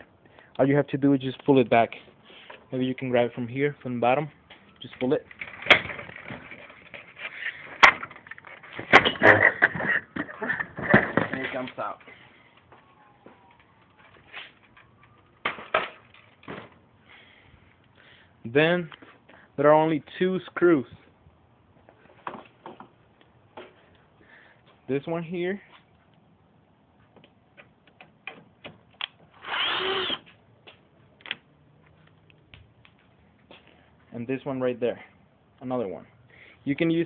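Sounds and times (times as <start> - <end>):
power driver whirring: 29.4 - 30.3.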